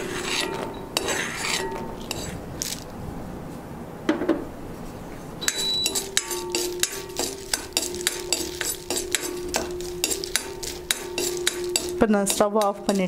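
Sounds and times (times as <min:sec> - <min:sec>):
metal spoon scraping metal pan: 0:00.0 - 0:02.8, 0:05.4 - 0:13.0
steady hum: 0:00.0 - 0:13.0.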